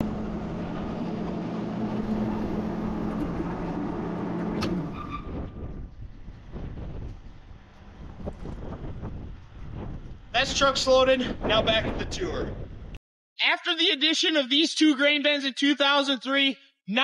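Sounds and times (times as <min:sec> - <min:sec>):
grain auger motor humming: 0:00.0 - 0:05.0.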